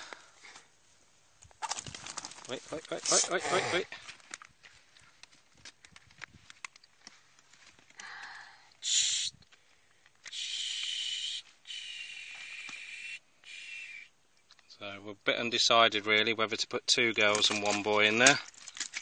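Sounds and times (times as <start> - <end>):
clicks and rustles of handling fish: 1.4 - 3.2, 4.0 - 8.4, 17.0 - 19.0
catfish hissing: 8.8 - 9.4, 10.3 - 14.1.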